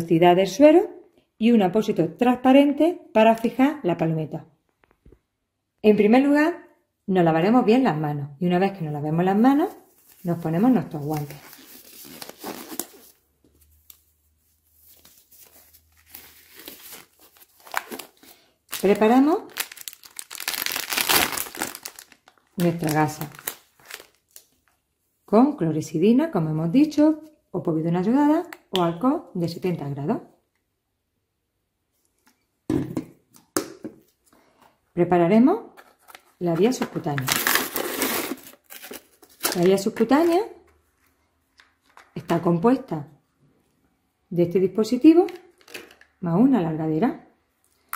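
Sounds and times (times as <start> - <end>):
plastic rustling: 9.6 - 24.8, 37.1 - 40.3
gauze packet crinkling: 9.7 - 13.2, 14.8 - 24.8, 37.2 - 39.8.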